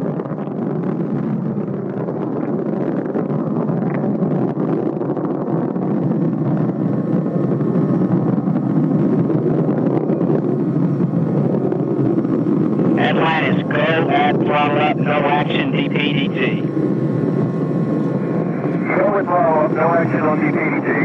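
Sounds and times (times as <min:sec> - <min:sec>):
rushing airflow: 0:00.0 - 0:21.0
rocket booster roar: 0:12.9 - 0:16.7, 0:17.5 - 0:21.0.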